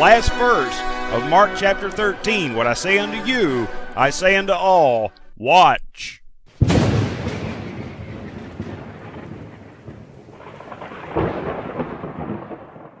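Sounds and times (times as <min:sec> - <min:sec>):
crackling thunder peal: 0:06.5 - 0:13.0
thunder rumbling: 0:06.5 - 0:13.0.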